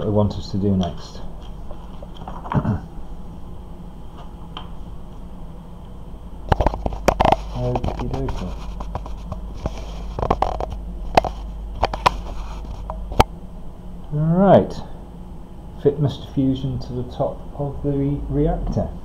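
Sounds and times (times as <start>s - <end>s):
steady low hum: 0.0s - 19.0s
paper rustle: 1.4s - 2.6s, 6.6s - 12.9s.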